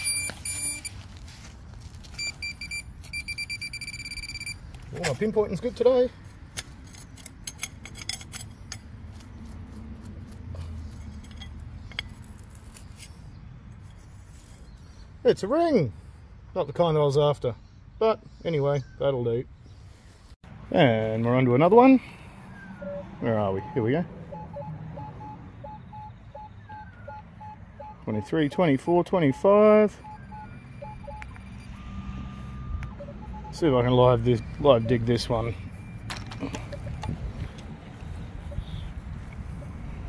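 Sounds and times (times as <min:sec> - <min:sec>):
metal detector beeps: 0:00.0 - 0:01.0, 0:02.0 - 0:05.3, 0:22.8 - 0:37.2
knife scraping through soil: 0:08.6 - 0:14.8.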